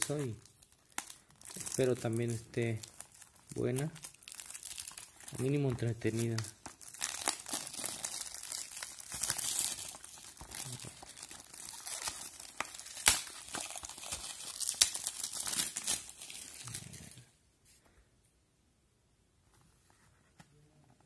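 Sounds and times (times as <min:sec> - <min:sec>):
plastic wrap crinkling and tearing: 0:00.0 - 0:17.3.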